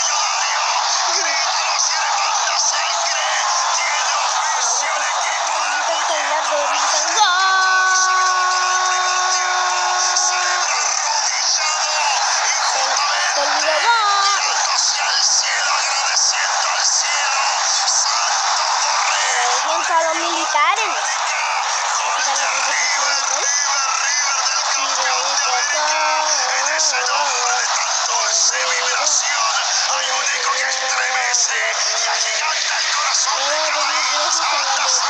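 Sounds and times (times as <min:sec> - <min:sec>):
commentator talking: 0:00.0 - 0:35.0
stadium crowd noise: 0:00.0 - 0:35.0.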